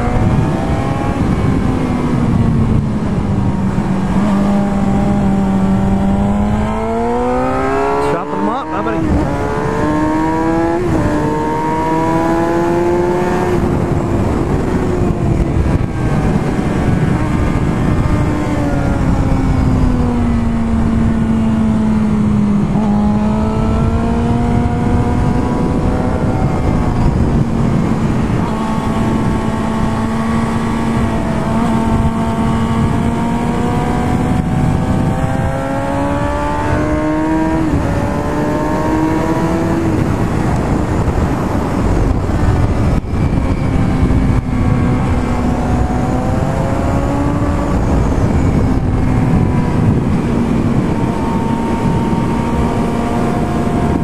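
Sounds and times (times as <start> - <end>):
motorcycle engine at speed: 0.0 - 54.0
wind noise rushing: 0.0 - 54.0.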